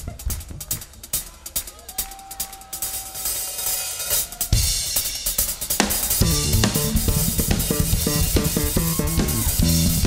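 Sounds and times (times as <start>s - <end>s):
live band music: 0.0s - 10.0s
cymbals washing: 0.8s - 10.0s
kick drum and bass guitar: 6.2s - 10.0s.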